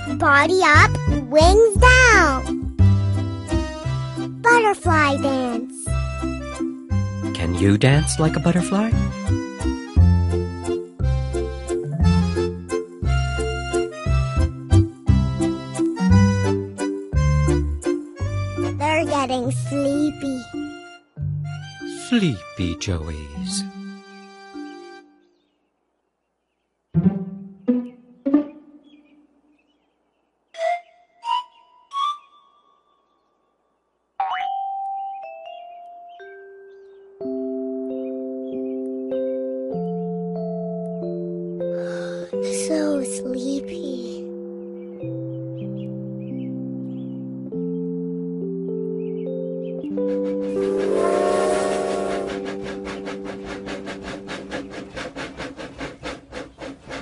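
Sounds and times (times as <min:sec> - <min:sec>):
steam train chugging: 0:50.0 - 0:57.0
steam whistle chord: 0:50.1 - 0:54.2.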